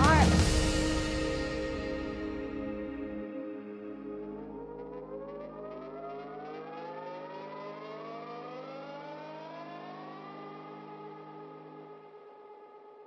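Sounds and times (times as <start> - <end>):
held low drone: 0.0 - 7.9
rising synthesized tones: 0.0 - 13.0.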